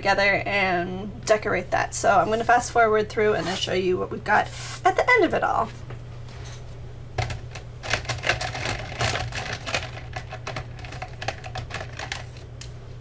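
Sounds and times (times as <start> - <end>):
steady low hum: 0.0 - 13.0
pens clicking and rattling: 7.2 - 12.4.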